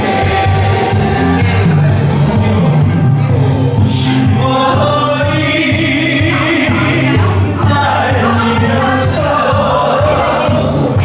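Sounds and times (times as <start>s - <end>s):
group singing in unison: 0.0s - 11.0s
song played back: 0.0s - 11.0s.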